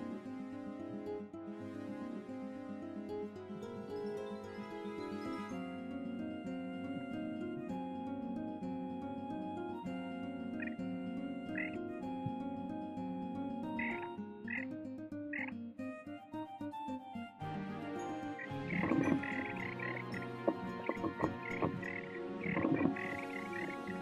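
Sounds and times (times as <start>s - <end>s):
soft plucked background music: 0.0s - 24.0s
frogs croaking: 10.6s - 12.4s, 13.6s - 15.7s, 18.3s - 24.0s.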